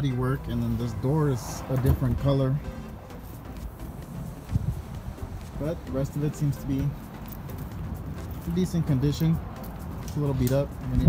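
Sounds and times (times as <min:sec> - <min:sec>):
footsteps on concrete: 0:02.8 - 0:10.9.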